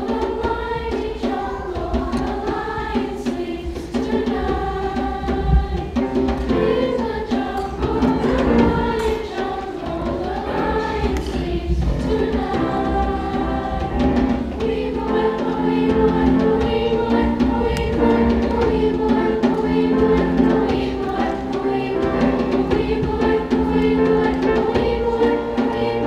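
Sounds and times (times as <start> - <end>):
choir singing held notes: 0.0 - 26.0
grand piano: 0.0 - 26.0.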